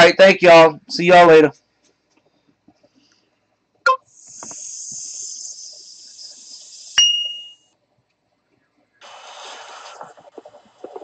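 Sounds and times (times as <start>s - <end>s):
high hiss: 4.1s - 7.6s, 9.0s - 11.0s
sharp metallic ding: 7.0s - 7.6s.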